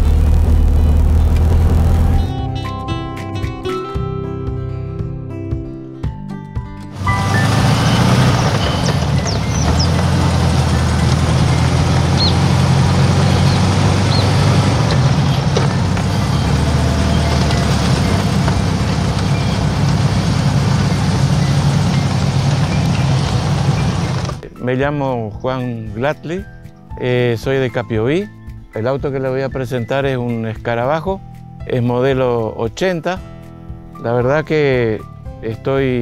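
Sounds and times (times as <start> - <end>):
car engine running: 0.0 - 2.4, 7.0 - 24.4
wind and road rush: 0.0 - 2.4, 7.0 - 24.4.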